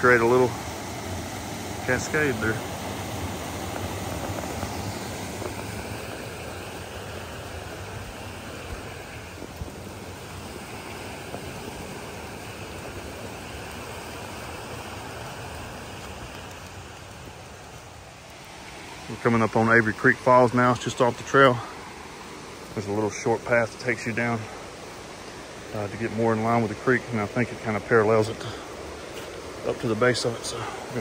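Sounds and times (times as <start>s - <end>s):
creek water rushing over cascade: 0.0s - 31.0s.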